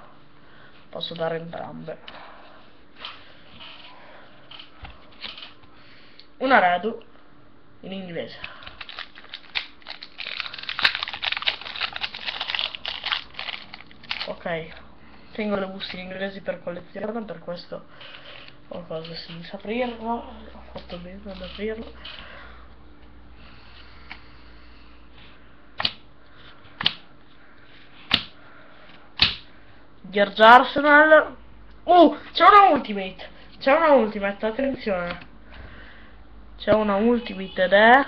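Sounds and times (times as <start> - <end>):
plastic foil packs crinkling: 8.5 - 14.5.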